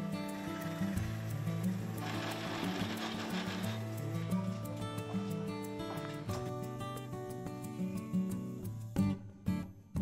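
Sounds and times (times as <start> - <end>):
plucked background music: 0.0 - 10.0
lathe bit boring into wood: 0.1 - 4.1.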